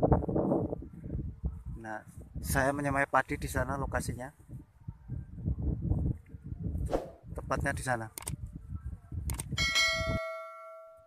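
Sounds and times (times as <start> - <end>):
wind rumbling on microphone: 0.0 - 10.4.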